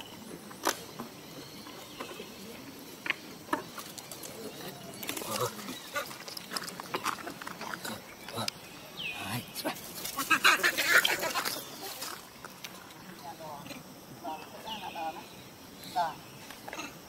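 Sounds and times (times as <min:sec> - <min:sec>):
macaques grunting and squeaking: 0:01.7 - 0:12.3, 0:16.7 - 0:17.0
macaque squeal: 0:10.1 - 0:11.9.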